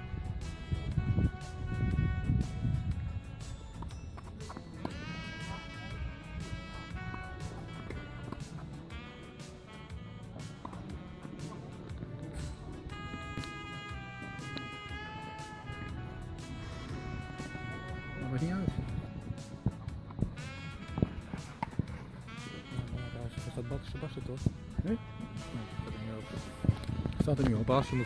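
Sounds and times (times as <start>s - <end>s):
music with gliding melodic notes: 0.0s - 28.0s.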